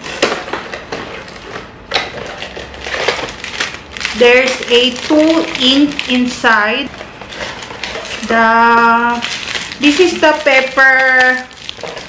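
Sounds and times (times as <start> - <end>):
plastic packaging rustling and crinkling: 0.0 - 12.0.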